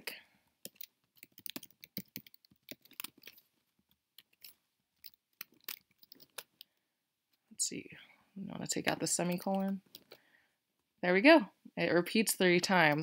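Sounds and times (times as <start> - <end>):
computer keyboard typing: 0.6 - 3.4, 4.2 - 6.6.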